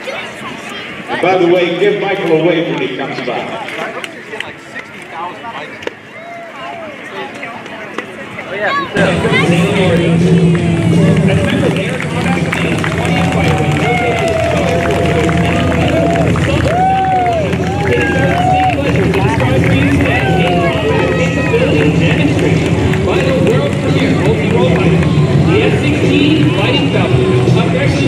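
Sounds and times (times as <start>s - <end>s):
crowd voices chattering: 0.0s - 28.0s
plane engine idling: 9.0s - 28.0s.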